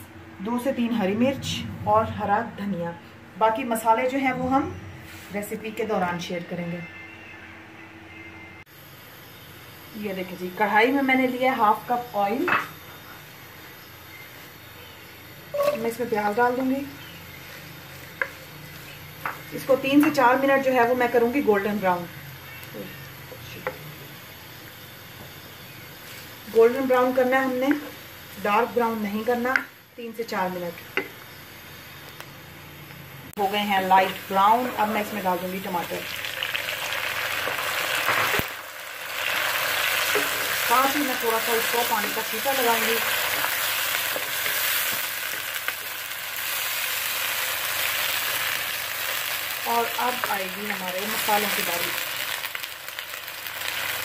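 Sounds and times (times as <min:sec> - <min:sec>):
onions sizzling in oil: 0:08.7 - 0:54.0.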